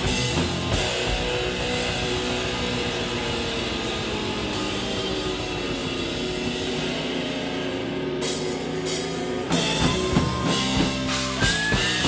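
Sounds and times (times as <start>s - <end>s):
cymbals crashing: 0.0s - 12.0s
heavy metal band playing live: 0.0s - 12.0s.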